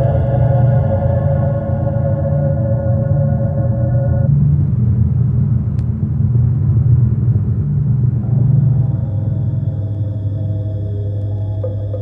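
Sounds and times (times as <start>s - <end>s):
gong-like chord: 0.0s - 4.4s
low rumbling drone: 0.0s - 12.0s.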